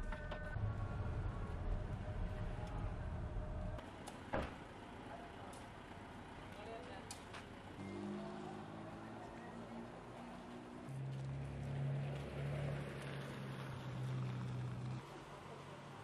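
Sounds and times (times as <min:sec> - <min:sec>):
street ambience: 0:00.0 - 0:16.0.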